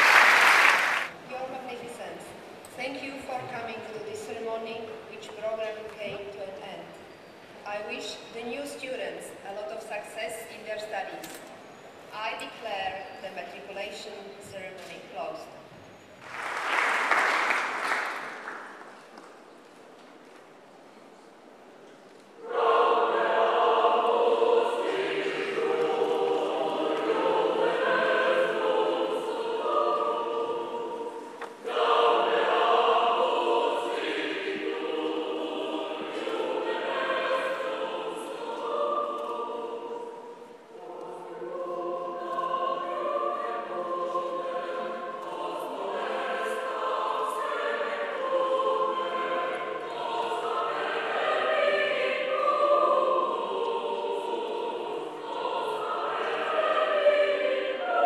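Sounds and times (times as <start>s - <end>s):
choir singing: 22.4s - 58.0s.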